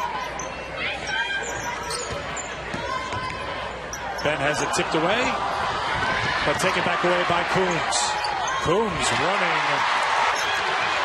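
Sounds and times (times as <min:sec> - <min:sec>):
sneaker squeaks: 0:00.0 - 0:04.6, 0:07.8 - 0:08.8.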